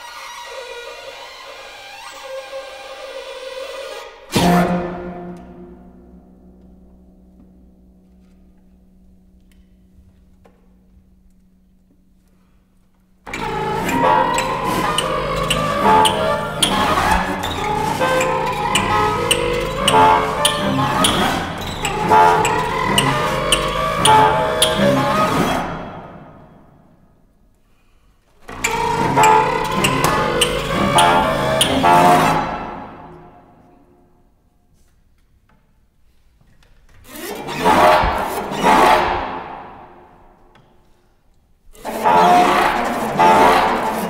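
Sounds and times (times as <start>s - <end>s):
chamber ensemble playing: 13.3s - 26.4s, 28.6s - 33.8s, 37.4s - 40.1s, 41.8s - 44.0s
sharp irregular strikes: 13.3s - 26.6s, 37.4s - 40.5s.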